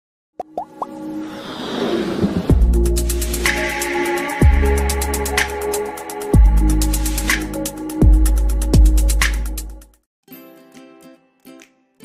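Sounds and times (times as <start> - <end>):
electronic music build: 0.4 - 9.8.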